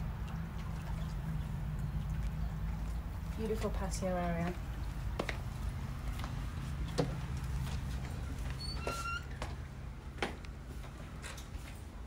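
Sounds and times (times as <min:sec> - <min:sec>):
low steady hum: 0:00.0 - 0:12.0
brief high squeak: 0:08.6 - 0:09.4.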